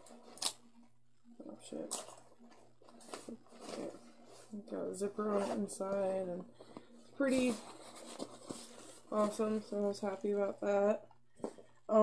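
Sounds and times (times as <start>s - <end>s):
faint low steady hum: 0.0s - 12.0s
fabric bag rustling: 1.8s - 10.5s.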